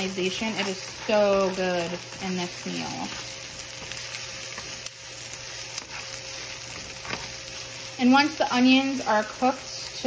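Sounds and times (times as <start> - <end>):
onions sizzling in oil: 0.0 - 10.0.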